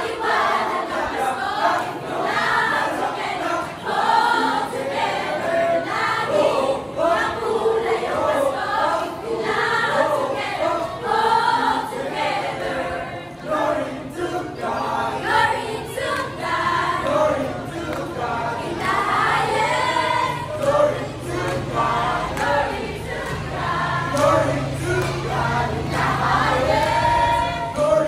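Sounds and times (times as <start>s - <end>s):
choir of women and girls singing: 0.0s - 28.0s.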